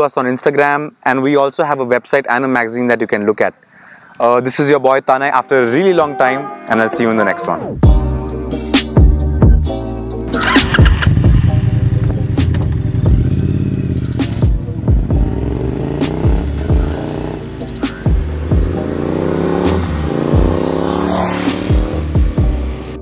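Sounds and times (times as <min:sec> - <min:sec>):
background music with steady beat: 0:05.6 - 0:23.0
motorcycle engine accelerating: 0:10.3 - 0:23.0.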